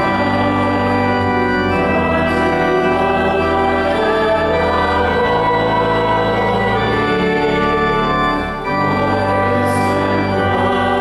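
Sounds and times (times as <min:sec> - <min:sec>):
church organ chords: 0:00.0 - 0:11.0.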